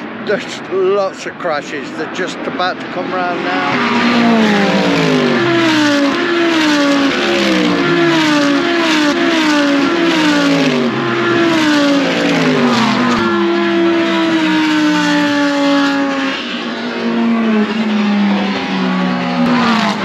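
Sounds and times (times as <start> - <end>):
race cars passing at speed: 0.0 - 20.0.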